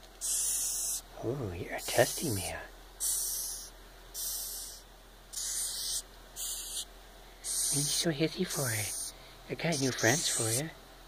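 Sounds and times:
cockroach hissing: 0:00.2 - 0:01.1, 0:01.7 - 0:10.7.

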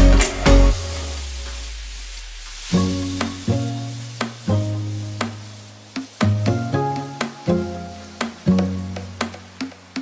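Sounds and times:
instrumental music low notes: 0:00.0 - 0:10.0.

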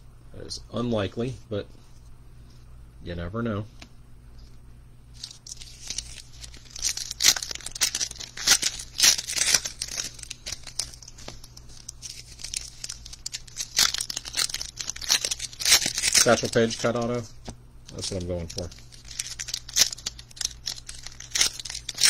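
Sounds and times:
foil wrappers tearing and crinkling: 0:05.2 - 0:17.2, 0:17.9 - 0:22.0.

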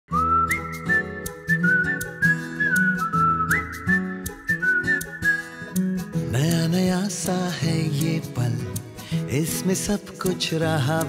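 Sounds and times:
whistled melody: 0:00.1 - 0:06.9.

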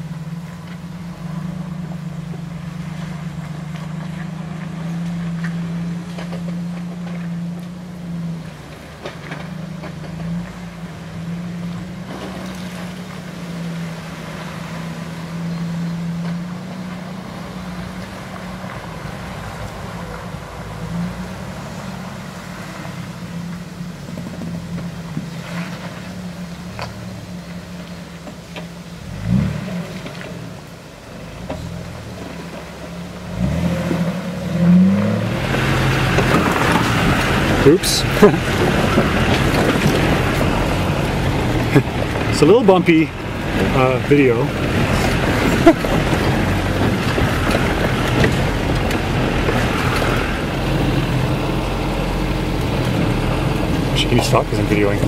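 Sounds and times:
car engine running at low revs: 0:00.0 - 0:55.0.

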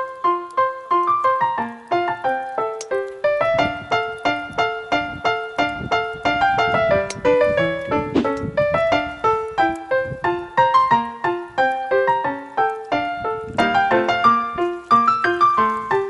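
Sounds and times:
piano music: 0:00.0 - 0:16.0.

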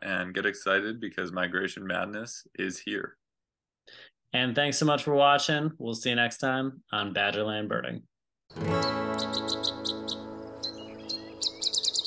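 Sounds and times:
acoustic guitar chord ringing: 0:08.5 - 0:11.5
songbird chirping: 0:08.6 - 0:12.0.

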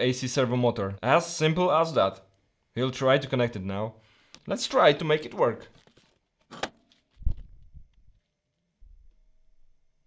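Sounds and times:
handling rustle: 0:05.4 - 0:08.4.

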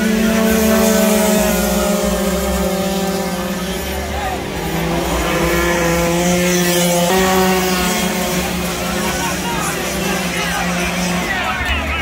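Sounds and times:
racing motorcycle engines: 0:00.0 - 0:12.0.

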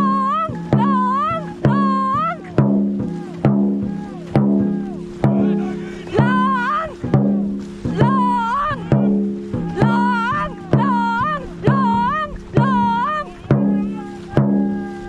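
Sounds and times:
steady beat: 0:00.0 - 0:15.0.

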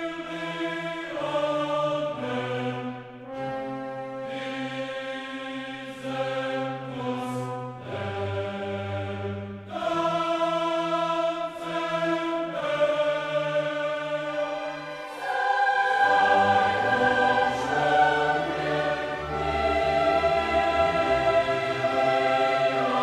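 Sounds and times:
orchestral music slow chords: 0:00.0 - 0:23.0.

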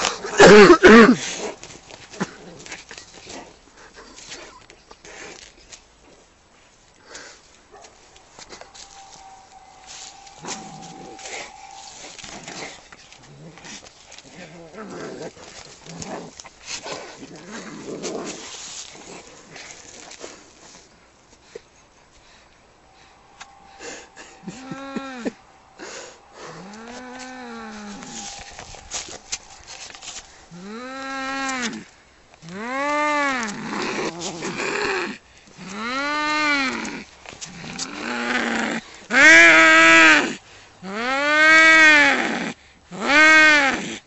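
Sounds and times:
cats hissing: 0:07.0 - 0:20.5, 0:22.7 - 0:41.1
cats yowling: 0:08.0 - 0:13.7, 0:22.9 - 0:31.9
cats growling and yowling: 0:08.0 - 0:18.5, 0:22.9 - 0:43.9.

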